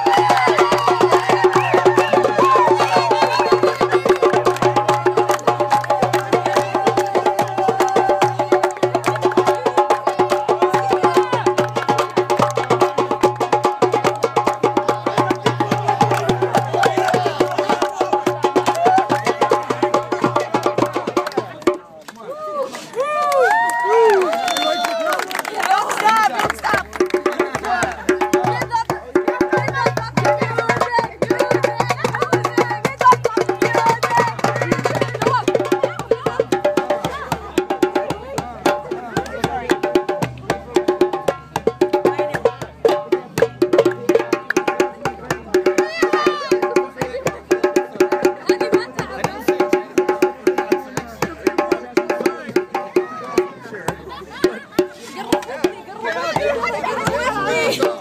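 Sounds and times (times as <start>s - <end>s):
hand drums playing fast rhythm: 0.0s - 21.9s, 25.4s - 58.0s
crowd voices: 0.0s - 58.0s.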